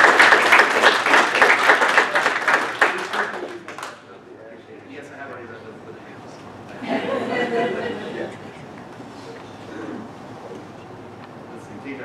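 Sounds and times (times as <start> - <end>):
murmuring voices: 1.9 - 12.0.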